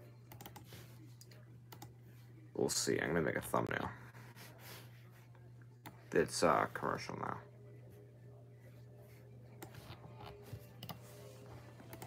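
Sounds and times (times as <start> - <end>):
low steady hum: 0.0 - 12.0
computer keys clicking: 0.3 - 0.7, 10.8 - 11.0.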